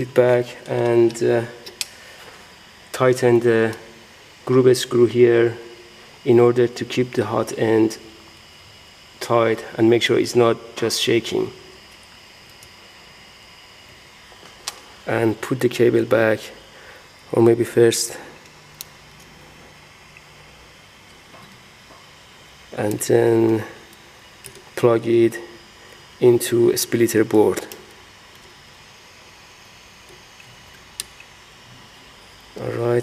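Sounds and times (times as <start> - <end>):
steady low hiss: 0.0 - 33.0.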